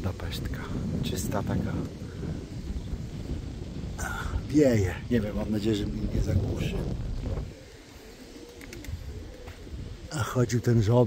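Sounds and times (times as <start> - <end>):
pigeons cooing: 1.9 - 11.0.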